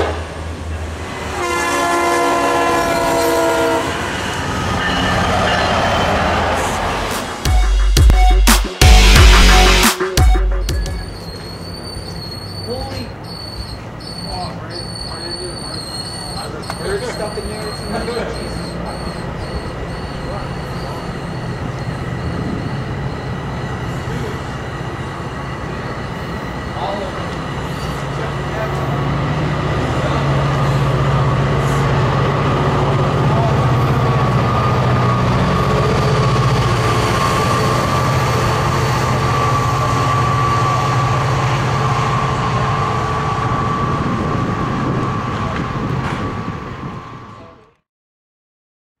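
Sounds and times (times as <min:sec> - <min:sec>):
train wheels rumbling on rail: 0:00.0 - 0:07.5, 0:11.0 - 0:47.7.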